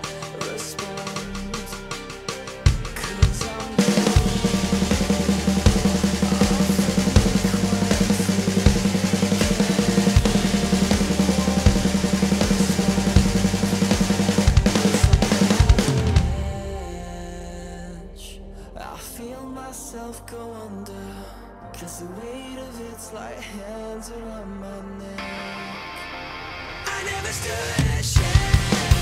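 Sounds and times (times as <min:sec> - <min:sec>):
electronic drum kit: 0:00.0 - 0:17.5, 0:27.1 - 0:29.0
heavy rock backing track: 0:00.0 - 0:17.7, 0:25.2 - 0:29.0.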